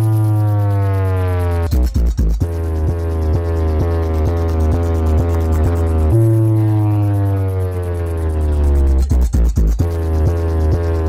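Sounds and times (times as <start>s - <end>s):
bass-heavy electronic music: 0.0s - 11.0s
deep bass note falling in pitch: 0.8s - 11.0s.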